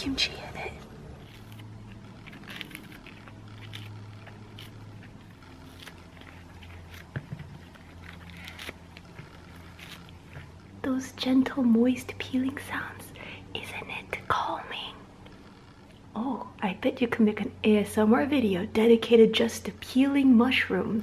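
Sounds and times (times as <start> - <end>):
mushrooms being torn apart: 0.8 - 10.6.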